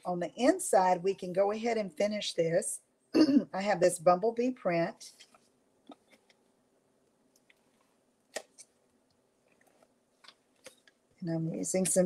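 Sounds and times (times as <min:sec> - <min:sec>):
paper and card rustling: 0:05.1 - 0:06.5.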